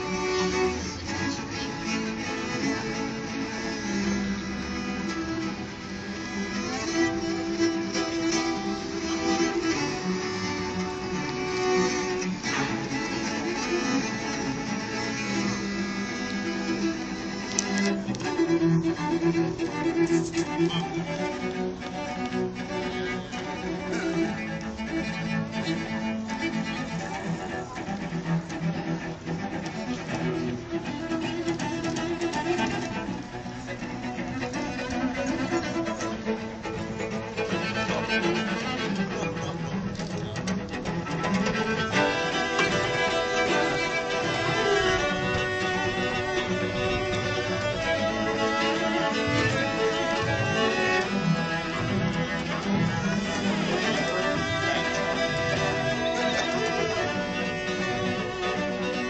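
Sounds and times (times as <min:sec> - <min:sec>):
cellos playing with bow: 0:00.0 - 0:59.0.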